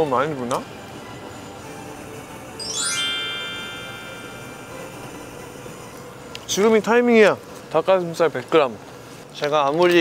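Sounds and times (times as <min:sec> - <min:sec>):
ringing chime: 0:02.6 - 0:05.9.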